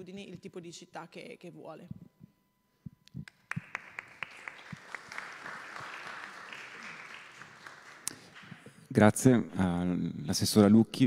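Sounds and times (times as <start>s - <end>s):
audience applauding: 3.3s - 8.8s.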